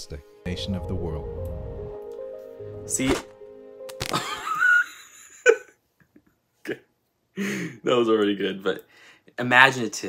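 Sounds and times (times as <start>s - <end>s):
man laughing: 4.0s - 5.8s.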